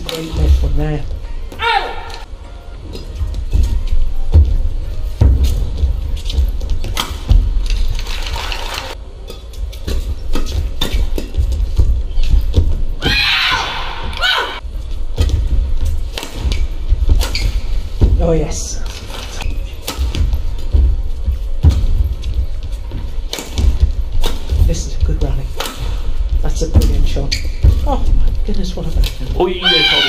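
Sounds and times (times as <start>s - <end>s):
person shouting: 1.6s - 2.2s
rackets hitting shuttlecock: 16.1s - 17.6s, 23.3s - 24.6s, 25.5s - 26.0s
shoe squeaks: 16.4s - 18.1s, 19.0s - 20.7s, 27.1s - 28.2s
feet thudding on court mat: 20.0s - 28.4s.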